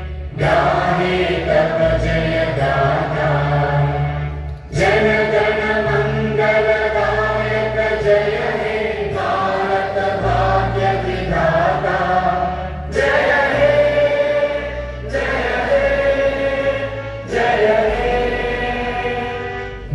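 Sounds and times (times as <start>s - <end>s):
choir singing slow song: 0.0s - 19.9s
instrumental backing: 0.0s - 19.9s.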